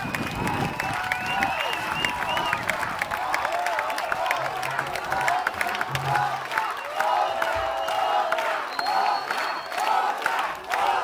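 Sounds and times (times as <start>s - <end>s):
audience clapping and cheering: 0.0s - 11.0s.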